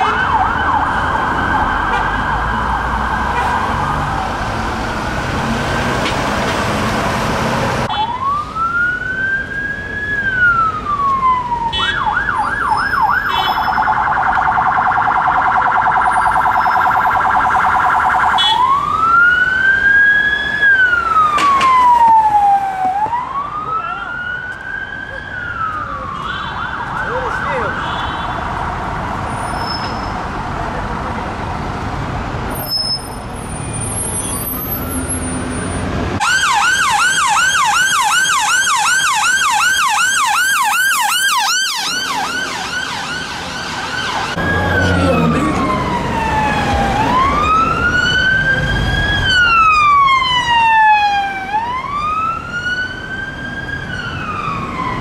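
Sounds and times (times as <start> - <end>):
loud siren rapid warble: 0.0 - 4.4, 7.8 - 28.7, 36.2 - 55.0
police siren yelping and wailing: 0.0 - 4.8, 7.8 - 28.9, 36.2 - 55.0.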